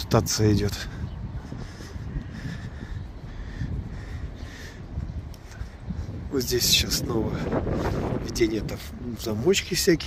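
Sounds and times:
city traffic: 0.0 - 10.0
wind: 0.0 - 10.0.

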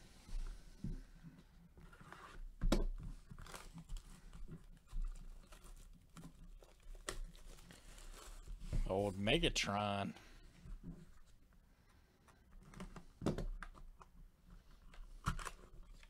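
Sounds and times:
plastic wrap crinkling and tearing: 3.2 - 8.6.

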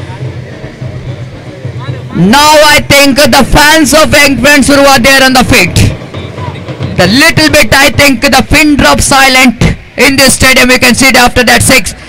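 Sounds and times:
distant band pulsing beat: 0.0 - 12.0
faint crowd voices: 0.0 - 12.0.

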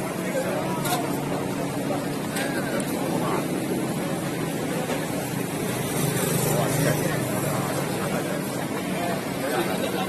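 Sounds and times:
low hum of traffic: 0.0 - 10.0
people talking: 0.0 - 10.0.

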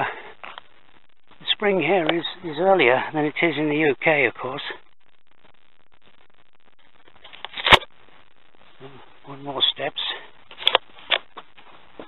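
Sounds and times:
man's voice: 1.4 - 4.8.

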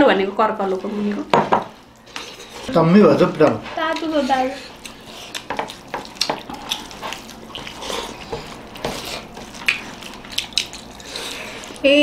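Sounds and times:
wet squishing of food: 0.6 - 12.0
mouths eating smacks: 4.8 - 11.8.

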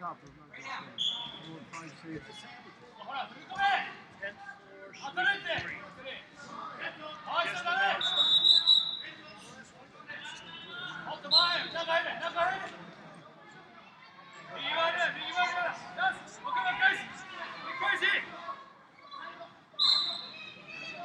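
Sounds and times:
whistle blasts: 1.0 - 1.5, 8.0 - 9.2, 19.8 - 20.6
people calling out in a hall: 2.3 - 21.0.

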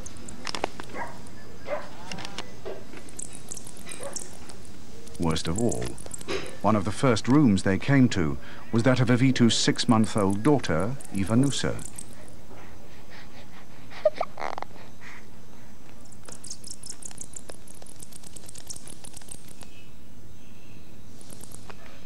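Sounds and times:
thin high bat clicks: 2.1 - 7.5, 16.0 - 19.9
bat squeak: 3.0 - 4.7, 16.1 - 19.5.

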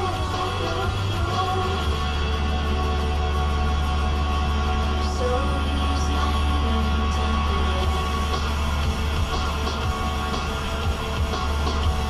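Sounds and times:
low rumble: 0.0 - 12.0
music on car radio: 0.0 - 12.0.

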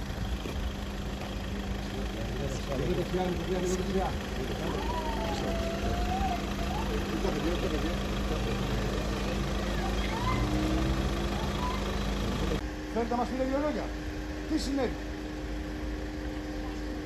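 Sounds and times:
vehicle engine idling: 0.0 - 17.0
faint voices talking: 1.2 - 12.6.

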